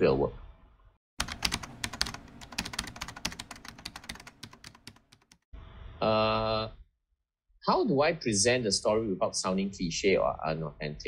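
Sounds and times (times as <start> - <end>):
keyboard typing: 1.2 - 5.4.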